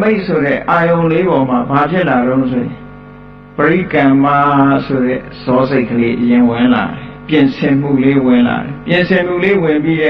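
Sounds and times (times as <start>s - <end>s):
man chanting: 3.6s - 10.0s.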